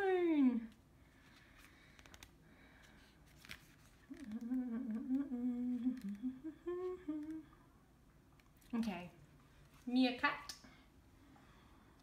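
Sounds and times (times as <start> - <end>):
woman humming: 0.0 - 0.8, 4.1 - 7.6.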